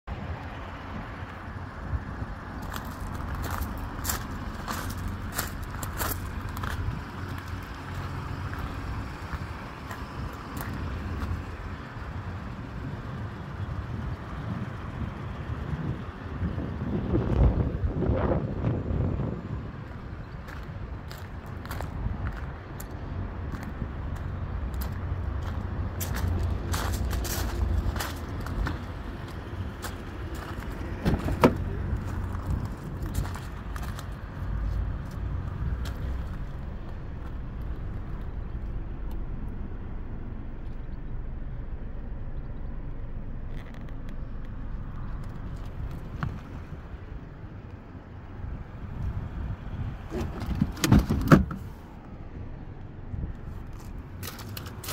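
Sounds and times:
low outdoor rumble: 0.0 - 54.9
footsteps crunching on gravel: 2.6 - 7.6, 20.5 - 35.2, 53.7 - 54.9.

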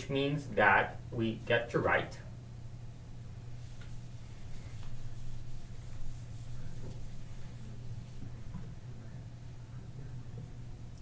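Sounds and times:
eraser rubbing on whiteboard: 3.6 - 8.6.

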